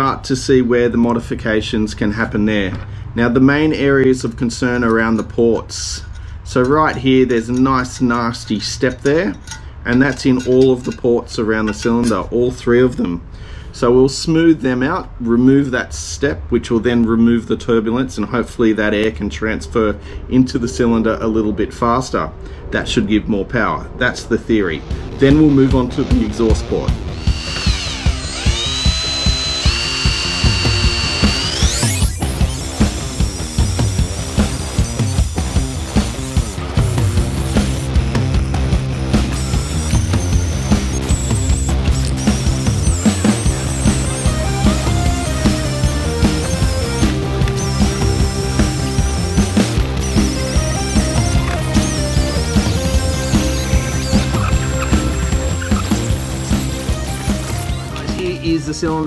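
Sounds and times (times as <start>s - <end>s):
background music with steady beat: 24.8s - 59.0s
die grinder whining: 25.8s - 58.6s.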